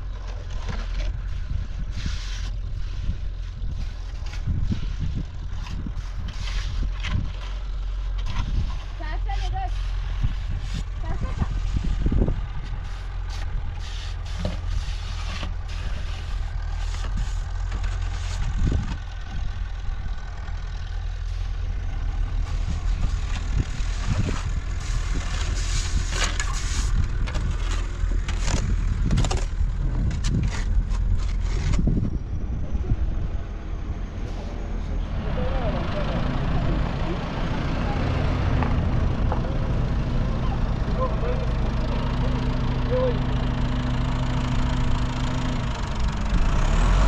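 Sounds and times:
heavy machine engine running: 0.0 - 47.0
sharp knocks and scrapes: 0.1 - 10.9, 12.6 - 19.0, 22.4 - 32.0.

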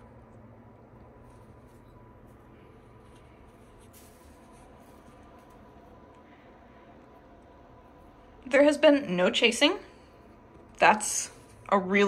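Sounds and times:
low steady room hum: 0.0 - 12.0.

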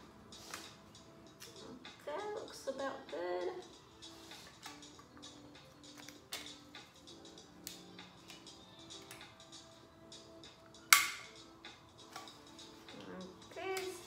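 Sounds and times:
soft background music: 0.0 - 14.0
loud sharp snap: 10.9 - 11.3.

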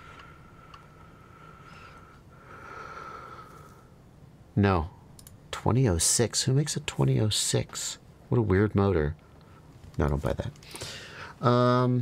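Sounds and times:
faint breathing: 0.0 - 4.0, 10.6 - 11.4
soft clicks: 5.1 - 5.4.

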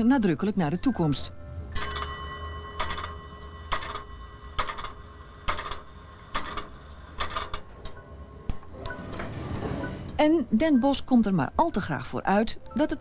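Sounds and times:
faint steady ringing tone: 0.9 - 8.8
mechanical clock ticking: 2.8 - 9.3.

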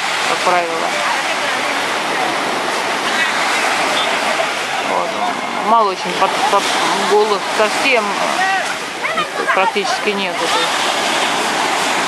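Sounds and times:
small waves breaking on beach: 0.0 - 12.0.

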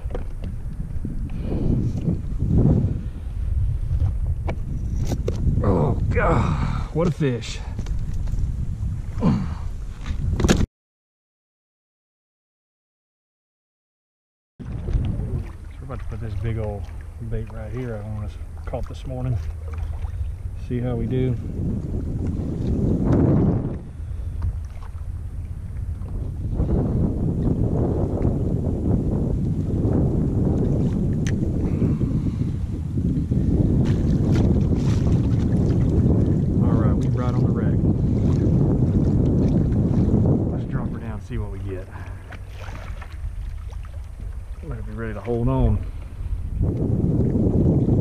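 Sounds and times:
water splashing along kayak hull: 0.0 - 10.6, 14.6 - 48.0
wind rumbling on microphone: 0.0 - 10.7, 14.6 - 48.0.

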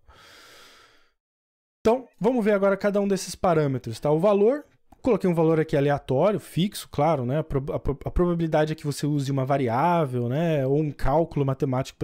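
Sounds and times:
man breathing in: 0.0 - 1.2
man speaking: 1.9 - 12.0.

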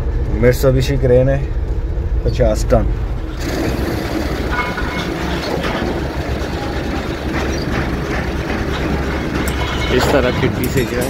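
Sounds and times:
diesel engine droning: 0.0 - 11.0.

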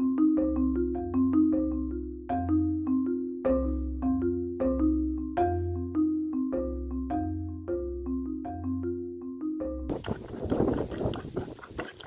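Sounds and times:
wooden spoon beating eggs in bowl: 9.9 - 12.0.

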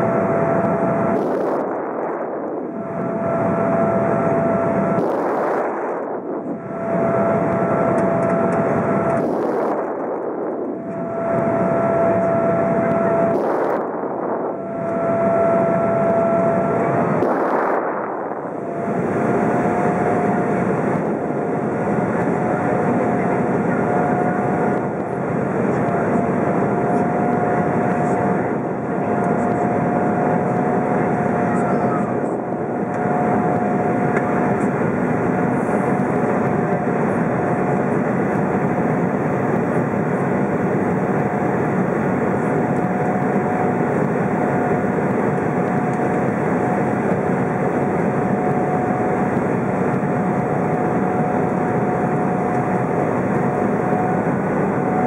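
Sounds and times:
airplane cabin engine drone: 0.0 - 55.0
thin steady whine: 0.0 - 55.0.

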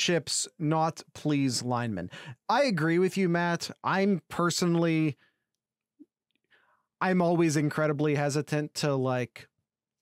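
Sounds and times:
man talking: 0.0 - 5.2, 7.0 - 9.6
faint breath: 2.1 - 2.4, 6.4 - 7.0.

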